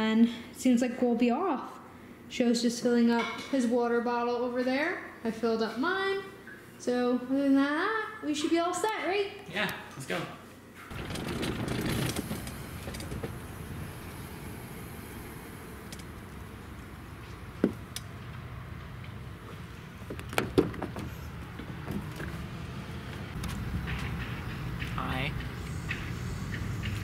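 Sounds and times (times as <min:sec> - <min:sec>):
low outdoor rumble: 0:10.9 - 0:27.0.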